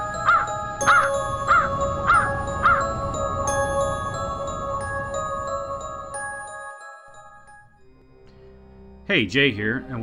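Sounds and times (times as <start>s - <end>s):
music with bell-like tones: 0.0s - 10.0s
crow cawing: 0.2s - 2.9s.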